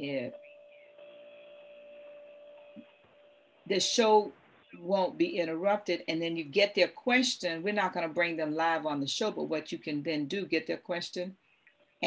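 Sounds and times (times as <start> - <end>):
electrical hum with held tone: 0.0 - 12.0.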